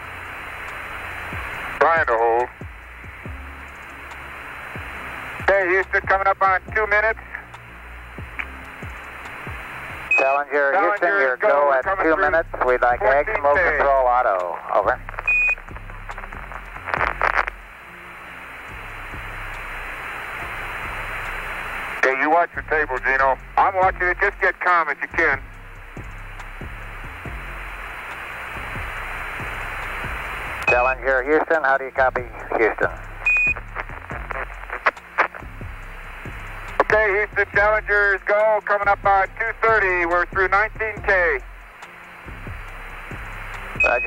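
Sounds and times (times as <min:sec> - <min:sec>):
low background music: 0:00.0 - 0:44.0
radio hiss: 0:00.0 - 0:44.0
steady low hum: 0:00.0 - 0:44.0
astronaut speaking over radio: 0:01.8 - 0:02.6, 0:05.4 - 0:07.4, 0:10.1 - 0:15.2, 0:22.0 - 0:25.4, 0:30.6 - 0:33.1, 0:36.8 - 0:41.4.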